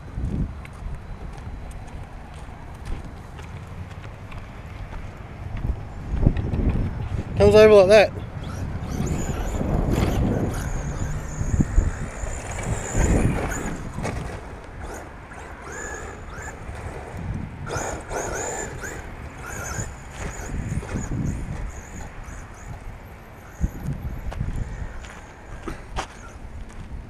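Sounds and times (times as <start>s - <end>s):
wind buffeting microphone: 0.0s - 27.0s
toy truck motor whining: 7.5s - 26.4s.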